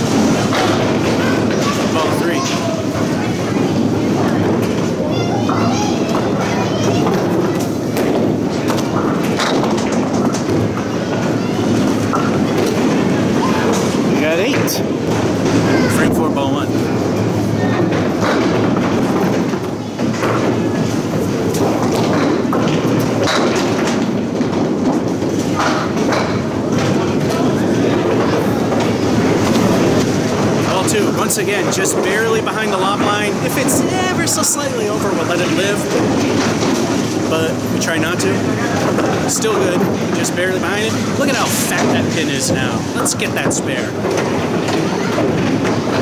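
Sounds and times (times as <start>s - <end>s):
bowling ball rolling on wooden lane: 0.0s - 46.0s
hubbub of voices: 0.0s - 46.0s
machinery: 7.6s - 46.0s.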